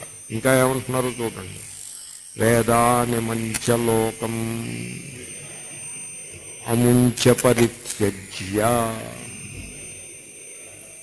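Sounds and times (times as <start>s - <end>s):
high-pitched electronic whine: 0.0s - 11.0s.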